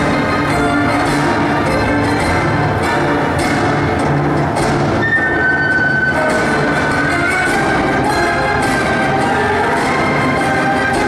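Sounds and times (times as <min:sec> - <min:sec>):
dense loud music: 0:00.0 - 0:11.0.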